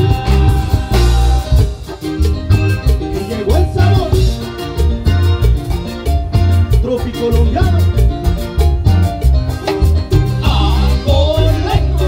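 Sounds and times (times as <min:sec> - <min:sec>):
accordion melody: 0:00.0 - 0:12.0
live cumbia band: 0:00.0 - 0:12.0.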